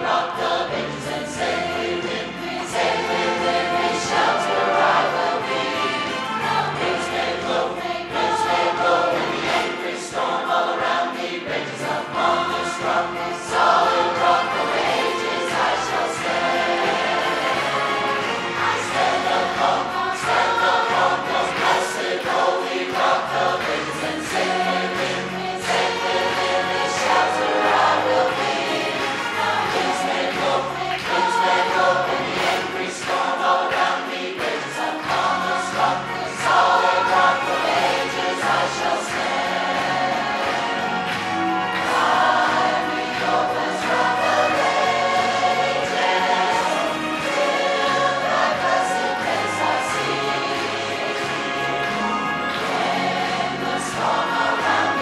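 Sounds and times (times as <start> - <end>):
mixed choir singing: 0.0 - 55.0.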